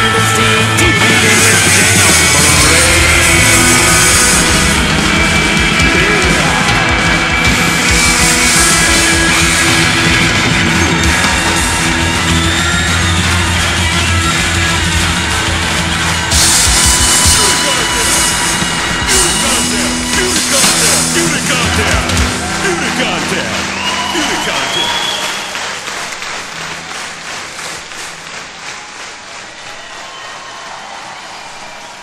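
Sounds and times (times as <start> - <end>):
rock band playing: 0.0 - 28.6.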